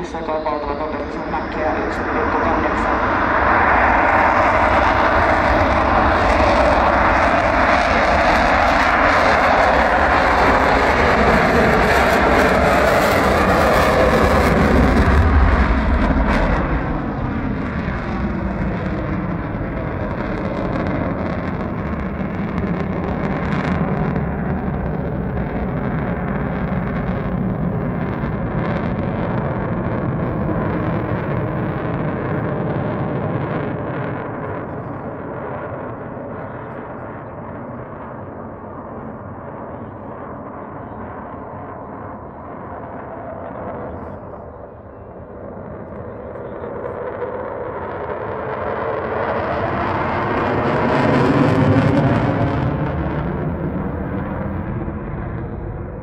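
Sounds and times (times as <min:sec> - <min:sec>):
jet engine roar: 0:00.0 - 0:56.0.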